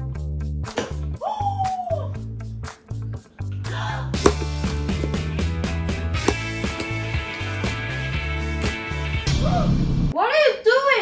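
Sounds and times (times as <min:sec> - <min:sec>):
upbeat background music: 0:00.1 - 0:09.4.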